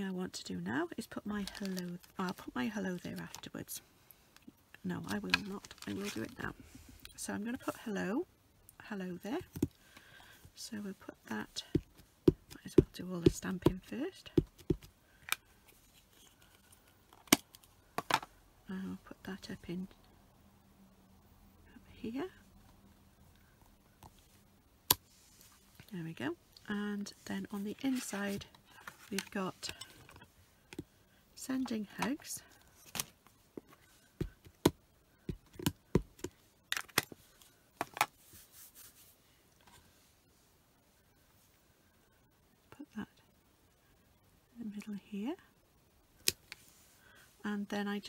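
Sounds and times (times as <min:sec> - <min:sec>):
handling craft supplies on desk: 0:01.0 - 0:03.8, 0:04.8 - 0:07.8, 0:11.2 - 0:18.3, 0:27.1 - 0:30.9, 0:31.6 - 0:39.8
soft rustle: 0:01.2 - 0:08.1, 0:15.1 - 0:17.1, 0:22.4 - 0:34.4, 0:36.3 - 0:41.7, 0:46.4 - 0:47.4.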